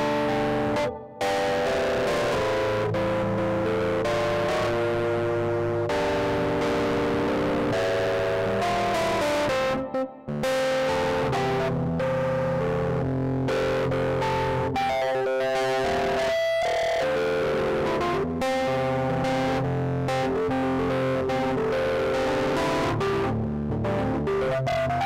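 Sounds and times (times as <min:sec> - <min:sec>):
electronic keyboard chords and melody: 0:00.0 - 0:25.0.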